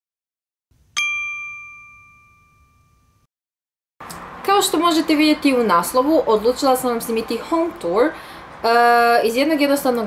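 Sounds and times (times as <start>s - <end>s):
bright chime ding: 1.0s - 3.2s.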